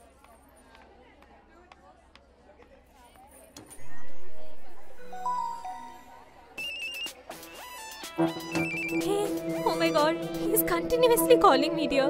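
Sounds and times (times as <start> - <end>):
electronic ringtone: 4.9 - 7.1, 8.2 - 12.0.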